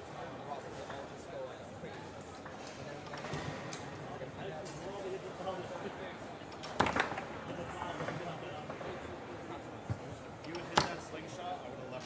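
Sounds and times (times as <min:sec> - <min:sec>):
murmur of voices: 0:00.0 - 0:12.0
foosball ball striking rods: 0:06.6 - 0:07.3.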